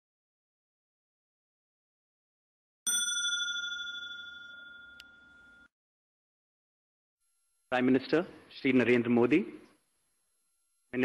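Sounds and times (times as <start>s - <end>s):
bell chime ringing: 2.9s - 5.7s.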